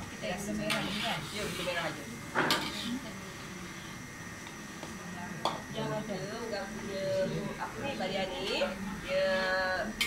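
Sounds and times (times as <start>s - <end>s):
murmur of people: 0.2s - 10.0s
spatula scraping a wok: 0.6s - 1.9s, 2.5s - 3.0s.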